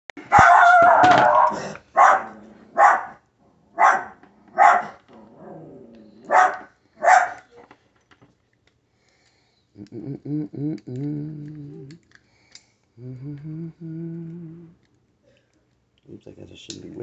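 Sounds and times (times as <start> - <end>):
dog barking and howling: 0.2 - 7.6.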